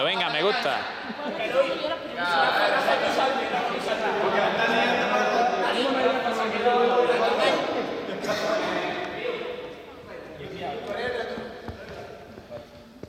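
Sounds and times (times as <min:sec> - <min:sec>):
young people talking in echoing hall: 0:00.0 - 0:13.0.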